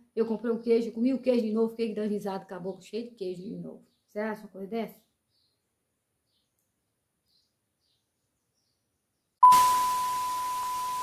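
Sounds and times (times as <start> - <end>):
steady high beep: 9.4 - 11.0.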